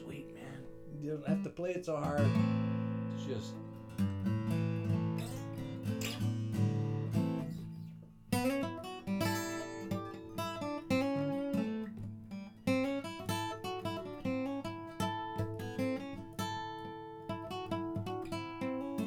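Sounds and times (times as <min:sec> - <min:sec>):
acoustic guitar picking: 0:00.0 - 0:19.0.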